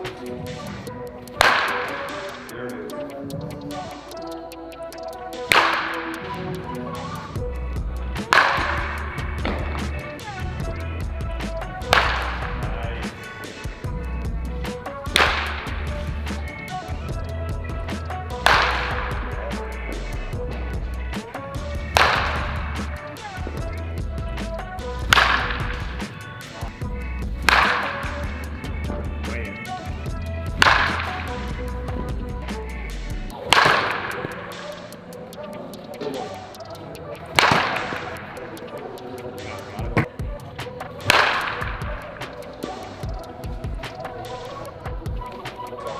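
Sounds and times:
baseball bat hitting balls: 0:00.0 - 0:04.6, 0:05.2 - 0:45.9
background music with bass beat: 0:00.0 - 0:45.9.

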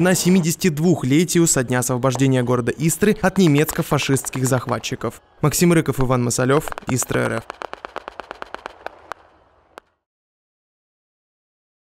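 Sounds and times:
distant rifle volley: 0:06.5 - 0:10.0.

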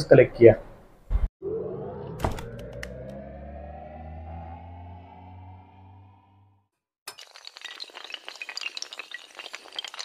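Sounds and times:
glass shattering: 0:07.1 - 0:10.0.

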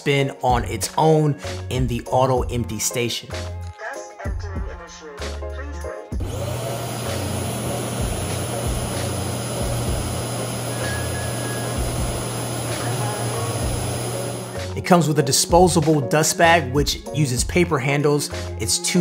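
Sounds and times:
suction motor rushing air: 0:06.2 - 0:14.8.

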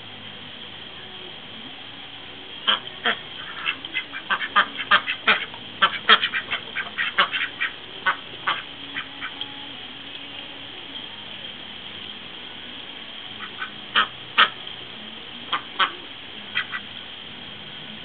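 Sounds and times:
ducks quacking: 0:02.6 - 0:09.4, 0:13.4 - 0:14.6, 0:15.4 - 0:16.9.

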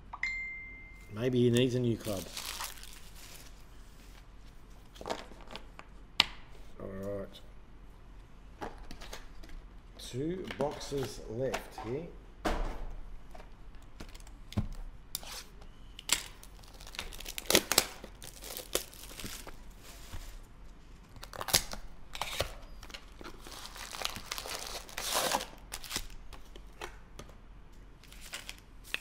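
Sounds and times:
foil packs rustling: 0:01.9 - 0:03.7, 0:16.4 - 0:20.5, 0:21.2 - 0:26.2
cardboard and wrapping tearing: 0:02.0 - 0:03.6, 0:16.5 - 0:19.6, 0:21.2 - 0:26.2.

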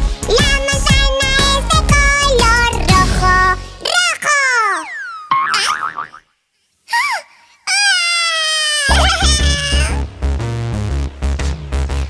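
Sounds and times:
upbeat music with heavy bass: 0:00.0 - 0:03.8, 0:08.9 - 0:12.0
springy cartoon tones: 0:04.3 - 0:06.2.

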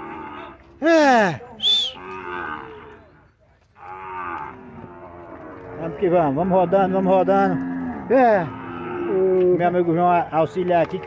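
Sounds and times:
cattle mooing: 0:00.0 - 0:03.1, 0:03.8 - 0:11.0.

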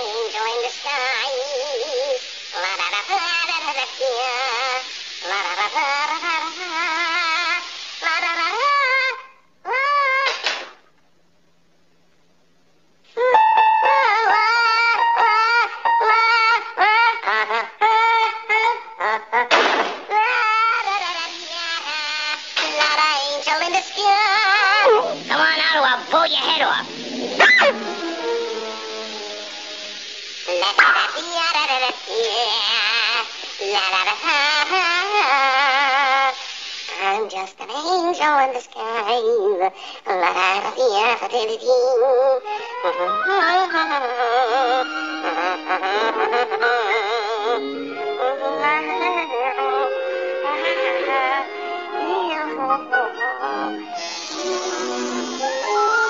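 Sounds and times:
cartoon man singing la la la: 0:00.0 - 0:10.2, 0:13.2 - 0:19.4, 0:20.1 - 0:26.6, 0:30.5 - 0:53.8
falling orchestral notes: 0:13.2 - 0:16.8, 0:26.7 - 0:30.2, 0:47.6 - 0:56.0
high voice warbling wordless tune: 0:13.2 - 0:19.6, 0:20.2 - 0:29.0, 0:30.5 - 0:36.1, 0:36.9 - 0:56.0.

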